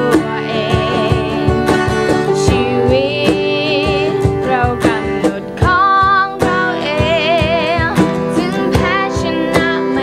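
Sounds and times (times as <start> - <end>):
acoustic guitars strumming chords: 0.0 - 10.0
girl singing: 0.0 - 10.0.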